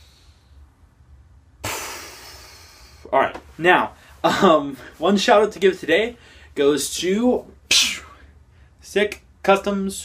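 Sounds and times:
room hum: 0.0 - 10.0
loud exhale through lips: 1.6 - 3.1.

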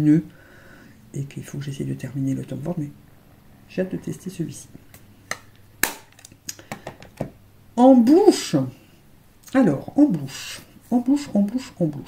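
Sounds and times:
makeup cases clicking and knocking: 5.3 - 7.4.

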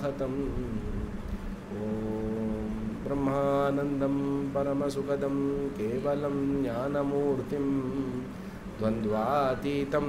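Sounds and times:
man chanting long steady note: 0.0 - 10.0.

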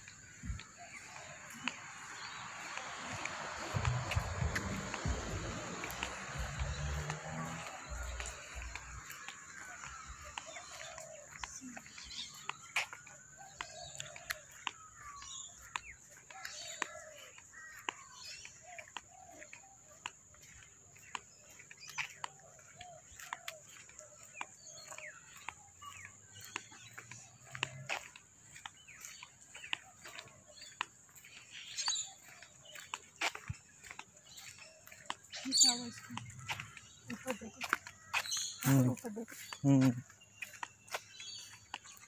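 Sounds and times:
birds chirping: 0.0 - 42.0
footsteps on footpath: 0.0 - 42.0.

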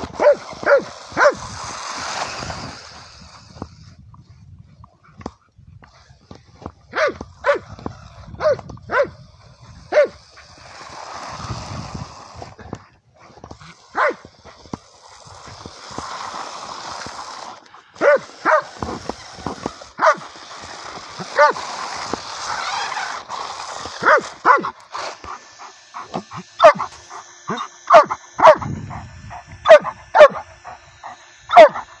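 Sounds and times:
dog barking: 6.9 - 7.6, 8.4 - 9.1, 9.9 - 10.2, 14.0 - 14.2, 18.0 - 18.7, 20.0 - 20.2, 24.0 - 24.7, 26.6 - 26.9, 27.5 - 28.7, 29.6 - 30.5, 31.5 - 31.9.

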